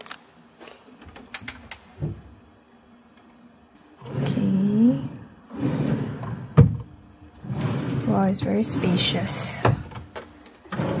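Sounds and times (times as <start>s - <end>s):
wooden drawer sliding open: 5.5s - 6.8s, 7.4s - 10.0s, 10.7s - 11.0s.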